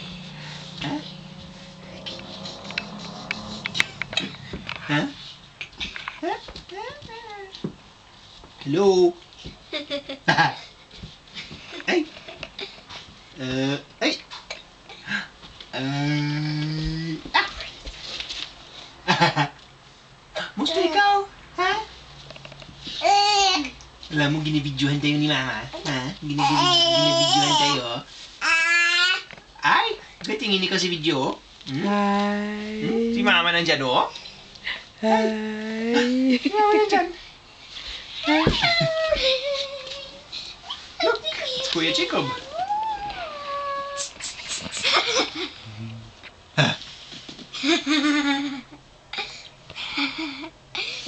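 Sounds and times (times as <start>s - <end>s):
soft baby vocal sounds: 42.2s - 44.7s.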